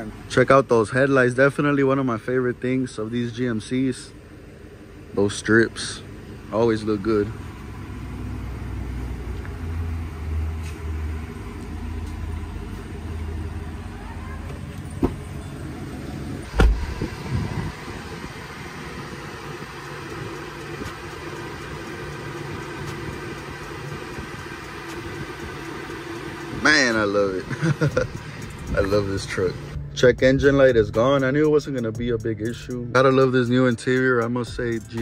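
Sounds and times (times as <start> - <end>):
pickup truck engine idling: 0.0 - 35.0
car door shutting: 14.3 - 15.6, 16.4 - 17.7.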